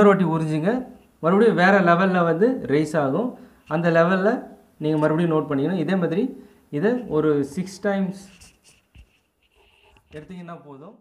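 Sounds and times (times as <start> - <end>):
chalk scratching on blackboard: 8.2 - 10.3.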